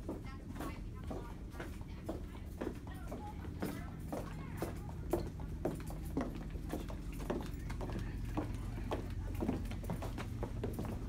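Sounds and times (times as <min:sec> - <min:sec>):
footsteps on tile floor: 0:00.0 - 0:11.0.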